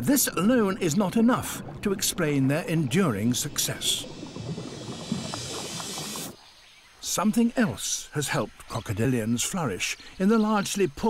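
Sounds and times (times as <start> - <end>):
hissing rush of water: 0.6 - 7.3.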